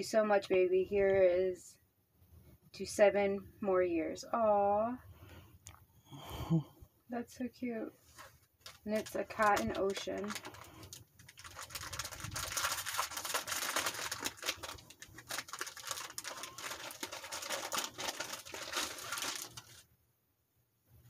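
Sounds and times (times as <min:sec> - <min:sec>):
gift packaging rustling: 0:08.0 - 0:19.9.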